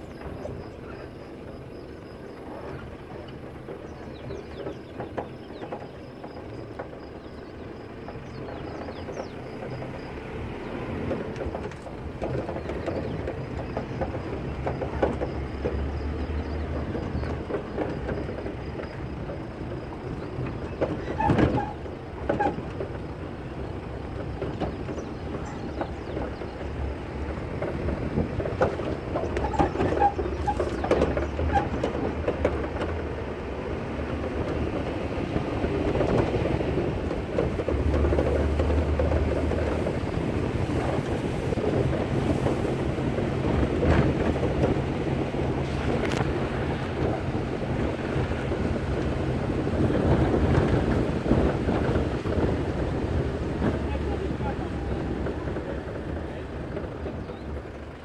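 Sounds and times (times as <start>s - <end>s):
knocks and rattles from bumps: 0.0s - 58.0s
low engine drone: 0.0s - 58.0s
wind buffeting microphone: 0.0s - 58.0s.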